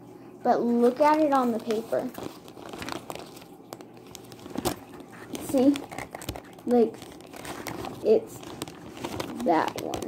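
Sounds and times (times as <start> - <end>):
paper filter crinkling: 0.7 - 10.0.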